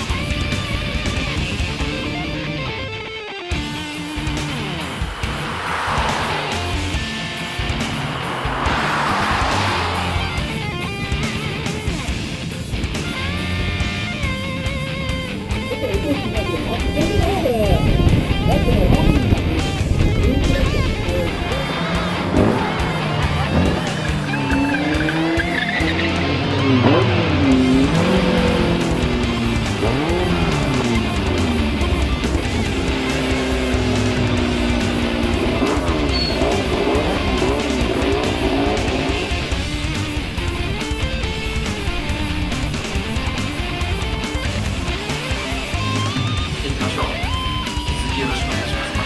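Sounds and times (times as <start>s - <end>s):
guitar background music: 0.0s - 5.2s, 10.2s - 49.0s
race car engines revving: 3.5s - 49.0s
car passing whoosh: 3.9s - 12.3s, 20.6s - 25.4s.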